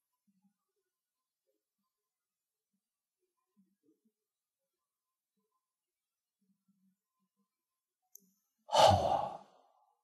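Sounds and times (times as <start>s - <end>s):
man sighing heavily: 8.7s - 9.4s.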